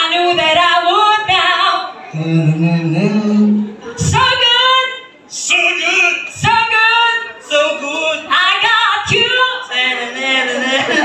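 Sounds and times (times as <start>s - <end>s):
person singing into a microphone: 0.0s - 11.0s.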